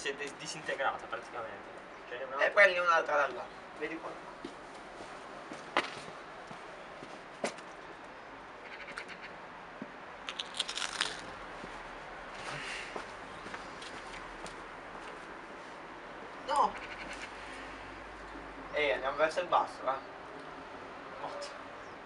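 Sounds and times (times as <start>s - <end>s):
light clicks and scuffs: 4.4s - 7.9s, 12.4s - 15.8s.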